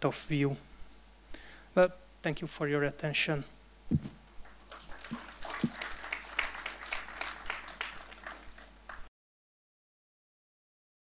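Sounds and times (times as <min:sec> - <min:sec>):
audience applause: 0:04.4 - 0:09.1.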